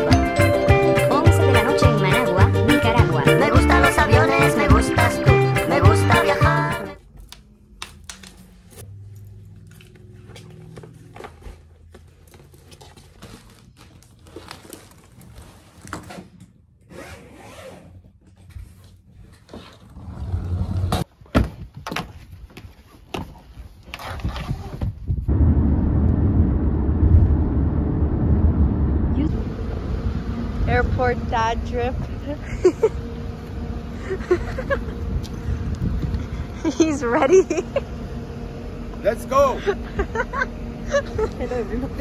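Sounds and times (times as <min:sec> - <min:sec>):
loud low rumble outdoors: 0:07.0 - 0:12.1, 0:25.2 - 0:42.0.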